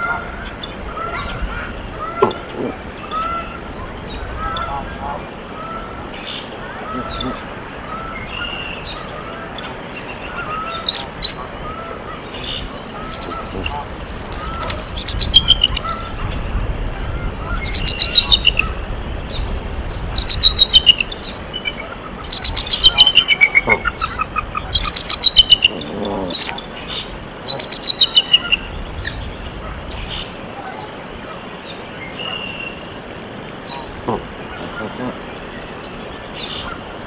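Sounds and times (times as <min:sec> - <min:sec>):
bird trilling: 0:10.3 - 0:16.4, 0:17.0 - 0:18.8, 0:20.1 - 0:30.3.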